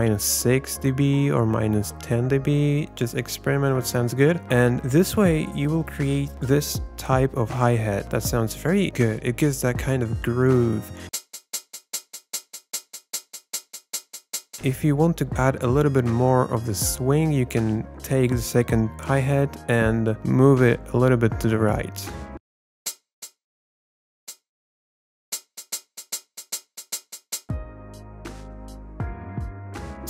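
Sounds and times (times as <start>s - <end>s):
looping hi-hat pattern: 11.2s - 14.7s, 25.4s - 27.6s.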